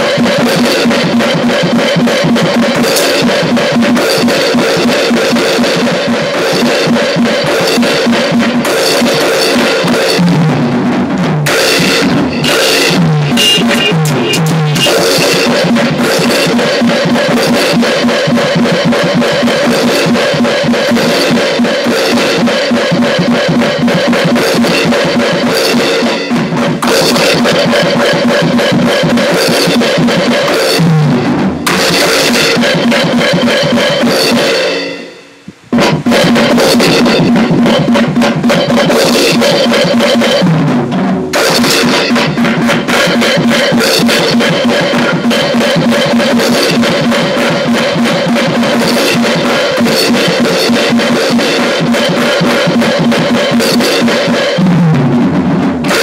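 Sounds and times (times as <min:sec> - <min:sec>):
fast punk rock song: 0:00.0 - 0:35.1, 0:35.7 - 0:56.0
electronic drum kit: 0:00.0 - 0:56.0.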